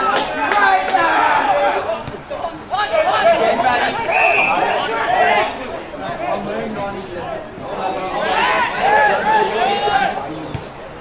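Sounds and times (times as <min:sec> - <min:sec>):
indistinct chatter and calls: 0:00.0 - 0:11.0.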